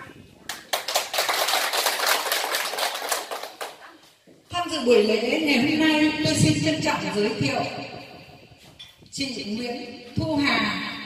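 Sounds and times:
audience applauding: 0.5s - 3.8s.

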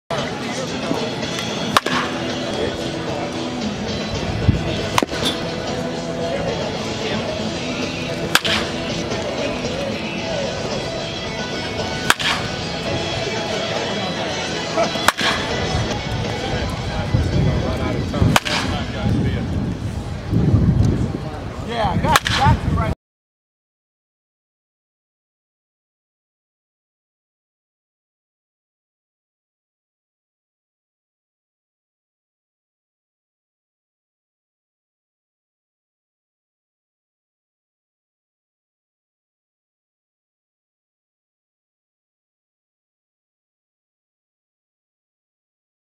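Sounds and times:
background voices: 0.1s - 20.3s
music: 0.1s - 22.8s
baseball bat cracking ball: 1.3s - 2.6s, 4.8s - 5.6s, 8.2s - 9.4s, 11.9s - 12.8s, 14.8s - 15.7s, 18.3s - 18.8s, 22.1s - 22.5s.

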